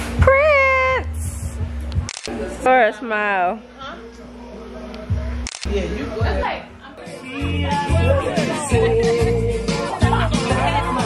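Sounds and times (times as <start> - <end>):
background music with low beat: 0.0 - 2.1, 4.9 - 11.0
voices: 2.1 - 11.0.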